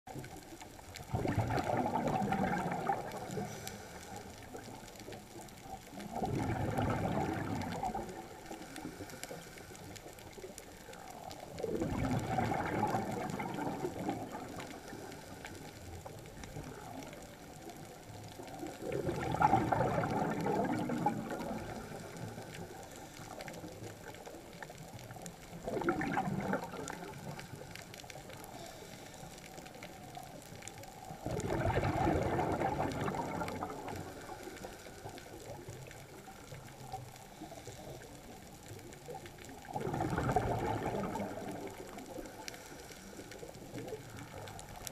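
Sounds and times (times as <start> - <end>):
diver's exhaled breath bubbling: 1.0 - 44.9.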